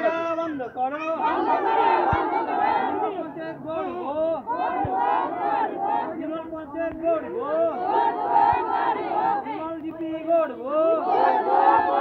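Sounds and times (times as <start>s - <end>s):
crowd shouting slogans: 1.0s - 12.0s.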